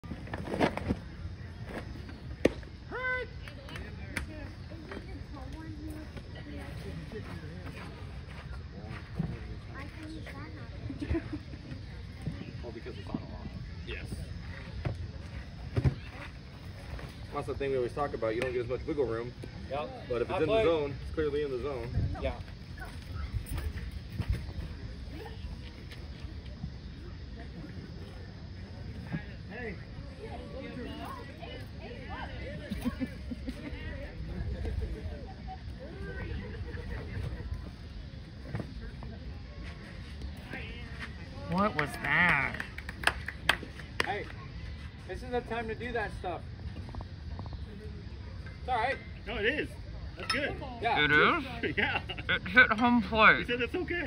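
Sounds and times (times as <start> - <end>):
faint distant voices: 0.0 - 54.0.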